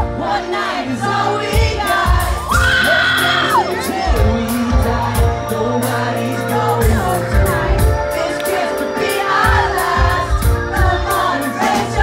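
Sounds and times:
drums: 0.0s - 12.0s
live pop-rock band: 0.0s - 12.0s.

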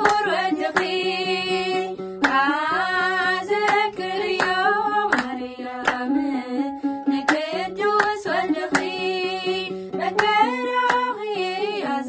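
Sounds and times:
hands clapping: 0.0s - 6.2s, 6.8s - 12.0s
women singing a hymn: 0.0s - 12.0s.

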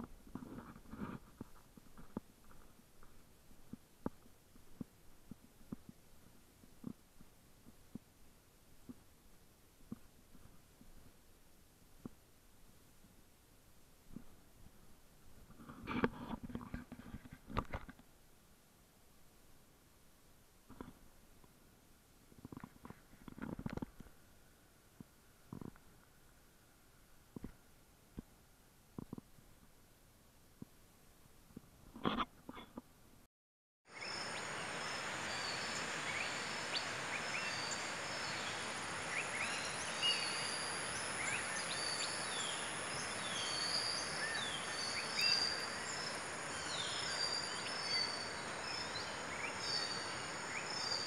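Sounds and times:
steady background hiss: 0.0s - 33.3s, 33.9s - 51.0s
small rocky stream rushing: 33.9s - 51.0s.

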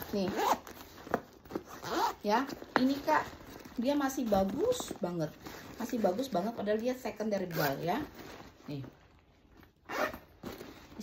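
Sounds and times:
handbag zipper opening: 0.0s - 3.6s, 7.4s - 8.6s, 9.6s - 11.0s.

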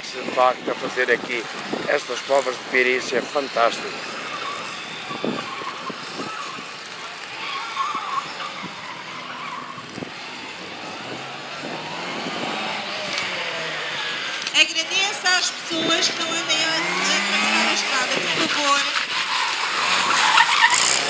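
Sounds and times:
tyre noise: 1.2s - 21.0s
car engine revving: 8.1s - 21.0s.

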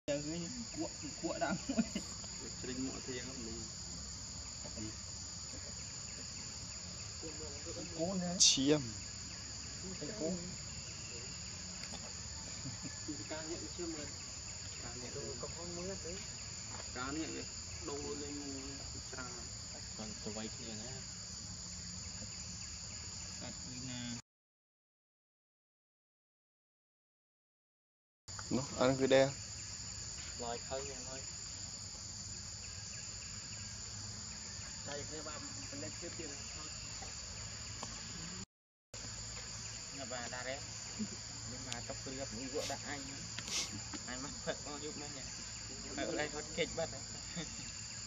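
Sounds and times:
high-pitched insect chorus: 0.1s - 24.2s, 28.3s - 38.4s, 39.0s - 48.0s.

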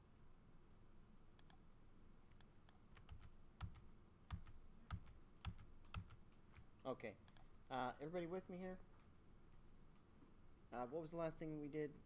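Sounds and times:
computer keys tapping: 2.3s - 7.5s.

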